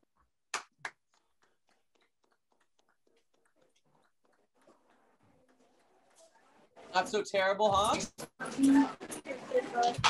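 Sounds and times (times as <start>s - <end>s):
people clapping over video call: 0.0s - 6.2s.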